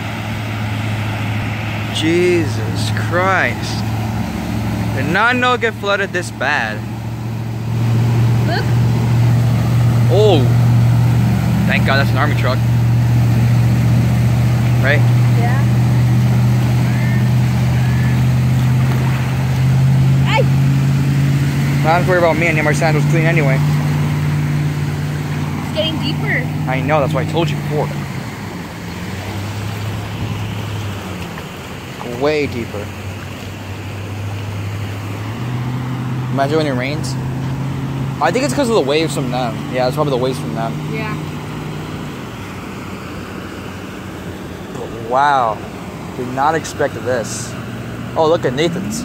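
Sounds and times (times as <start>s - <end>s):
moving floodwater: 0.0s - 49.0s
truck engine droning: 0.0s - 49.0s
vehicles splashing through water: 0.0s - 49.0s
wind: 0.0s - 49.0s.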